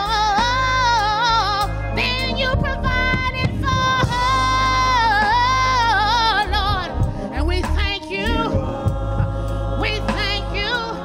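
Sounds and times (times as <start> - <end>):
woman singing lead: 0.0 - 9.0
bass line: 0.0 - 11.0
gospel choir singing: 0.0 - 11.0.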